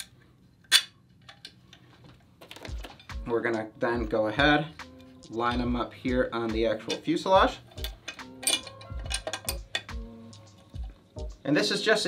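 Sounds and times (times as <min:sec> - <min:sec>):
background music with steady beat: 0:02.1 - 0:12.0.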